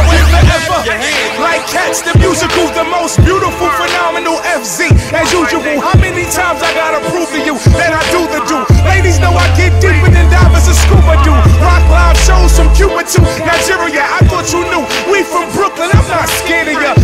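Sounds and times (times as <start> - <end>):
deep bass: 0.0 - 0.8, 8.7 - 12.9
rapping over a beat: 0.0 - 17.0.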